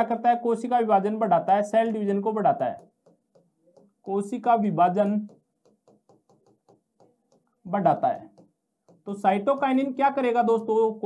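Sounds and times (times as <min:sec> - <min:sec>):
marker pen writing on whiteboard: 0:00.8 - 0:10.7.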